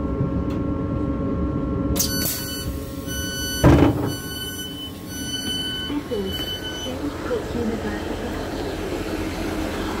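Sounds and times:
diesel train engines rumbling: 0.0s - 10.0s.

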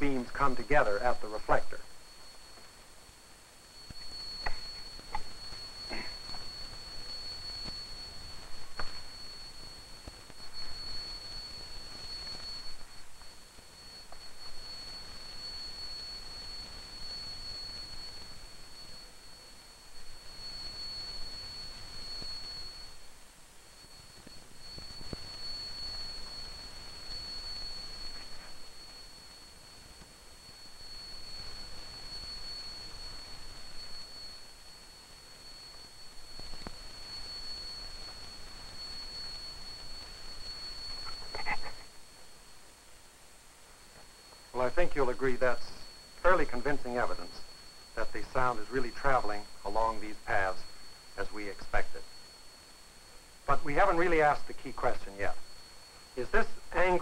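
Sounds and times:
faint hiss: 0.0s - 57.0s
high-pitched test tone: 23.8s - 42.0s.

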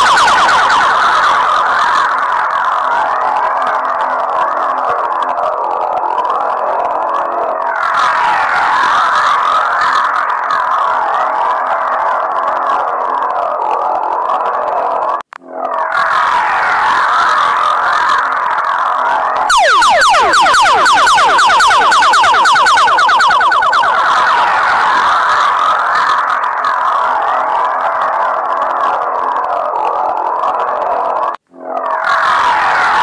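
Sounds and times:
wailing sirens: 0.0s - 14.7s, 15.4s - 30.9s, 31.5s - 33.0s.

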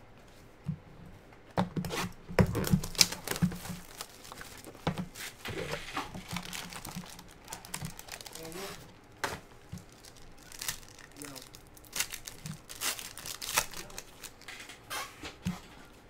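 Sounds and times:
cards clicking and rustling: 1.6s - 14.8s
foil wrappers crinkling and tearing: 2.0s - 15.1s.

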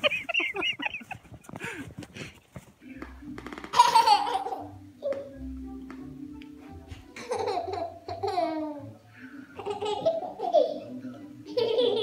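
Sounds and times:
person laughing: 0.0s - 1.9s.

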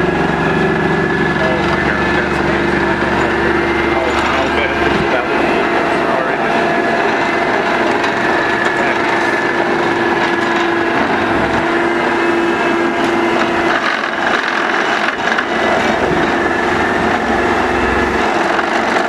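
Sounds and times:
excavator hydraulic whine: 0.0s - 19.0s
plate compactor working mulch: 0.0s - 19.0s.

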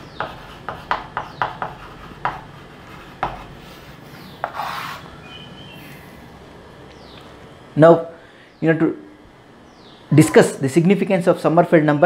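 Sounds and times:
chalk tapping on chalkboard: 0.0s - 5.0s
chalk scraping on chalkboard: 0.0s - 5.1s
faint chalk squeak: 4.0s - 6.0s.

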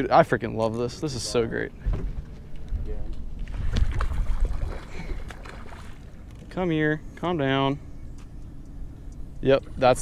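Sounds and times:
wind rumbling on microphone: 1.8s - 6.0s.

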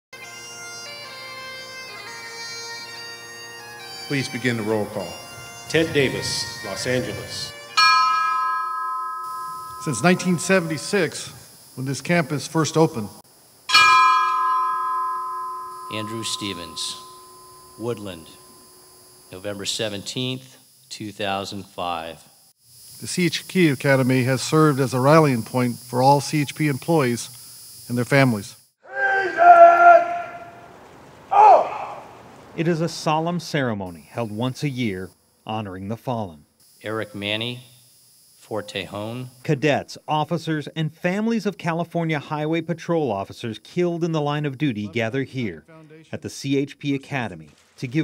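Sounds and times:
man's voice: 4.1s - 7.5s, 9.8s - 13.1s, 44.5s - 48.0s
bell ringing: 4.2s - 11.3s, 13.7s - 19.0s.

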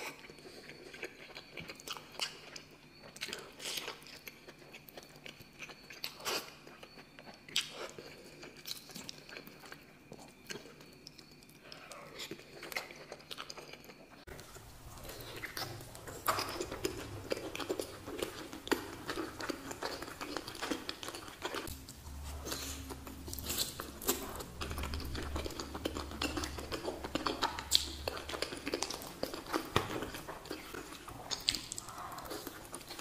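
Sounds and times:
close-miked chewing and lip smacking: 0.0s - 33.0s.

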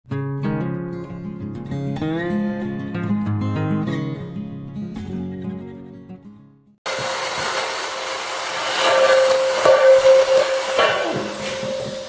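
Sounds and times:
acoustic guitar music: 0.1s - 6.8s
handheld power tool running: 6.9s - 12.0s.

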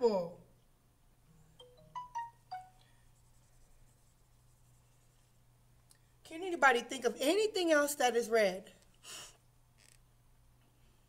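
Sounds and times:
marker squeaking on whiteboard: 9.8s - 10.0s.

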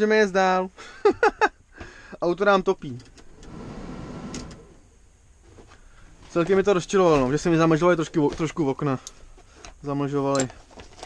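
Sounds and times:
heater blower fan running: 1.0s - 10.0s.

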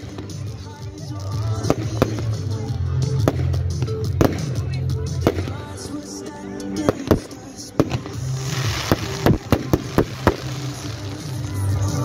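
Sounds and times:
fireworks bangs: 1.4s - 5.8s, 6.8s - 12.0s
crackling hiss: 7.1s - 12.0s.

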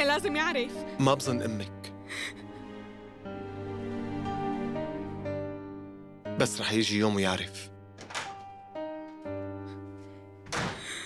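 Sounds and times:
door shutting thud: 8.0s - 8.6s, 10.4s - 11.0s.

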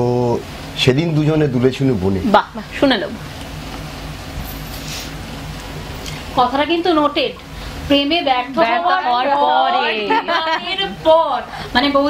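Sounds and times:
person speaking: 8.2s - 11.2s.

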